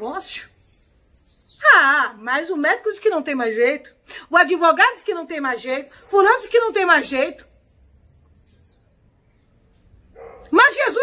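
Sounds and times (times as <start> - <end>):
small bird trilling: 0.1 - 1.7, 5.5 - 10.4.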